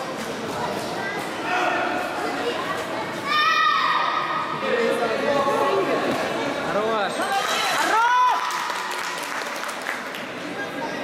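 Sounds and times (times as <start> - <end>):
steady chatter: 0.0 - 11.0.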